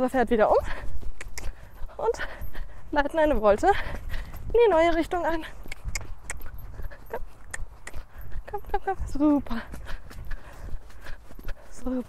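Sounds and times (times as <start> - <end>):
hoofbeats on wet sand: 0.0 - 12.0.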